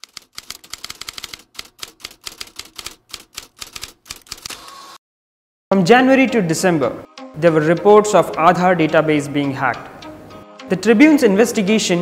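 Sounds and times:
typewriter keys clacking: 0.0 - 4.6.

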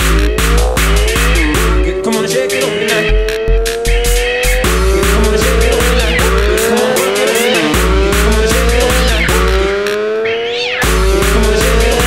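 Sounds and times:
booming kick-bass: 0.0 - 1.9, 3.1 - 6.8, 7.8 - 9.7, 10.8 - 12.0
hard electronic dance music: 0.0 - 12.0
sliding synth lead: 0.0 - 12.0.

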